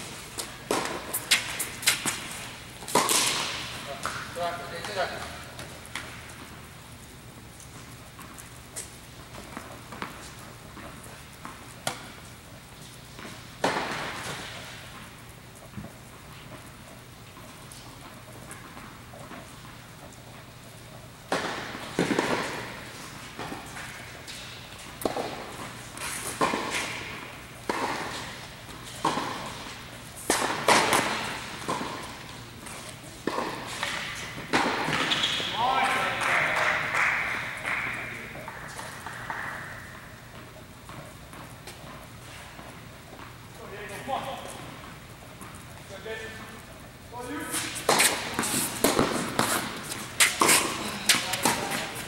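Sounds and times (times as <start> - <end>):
tennis balls struck and bouncing: 0.0 - 46.6, 47.2 - 52.0.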